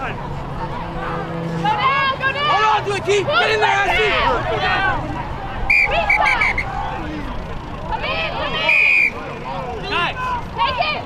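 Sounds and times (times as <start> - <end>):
many voices shouting: 0.0 - 11.0.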